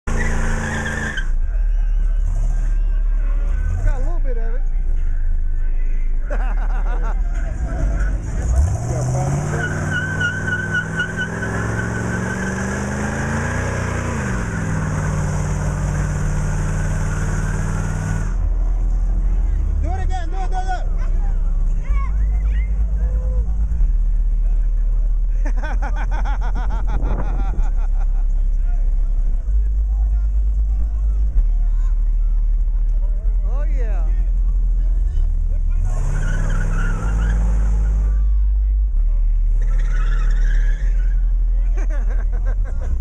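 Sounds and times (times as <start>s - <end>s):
tires squealing: 0.0s - 4.2s, 6.4s - 33.4s, 34.1s - 43.0s
car engine revving hard: 7.6s - 18.4s, 35.7s - 38.1s.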